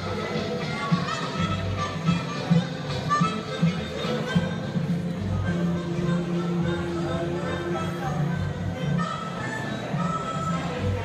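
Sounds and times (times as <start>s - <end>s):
music with a steady beat: 0.0s - 11.0s.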